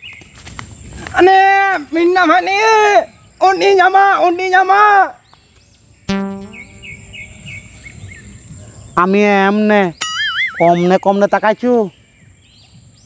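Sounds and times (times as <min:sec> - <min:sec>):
wobbling whistle: 0:06.1 - 0:07.1
quick high chirps: 0:06.1 - 0:07.4
buzzing tone: 0:06.1 - 0:07.6.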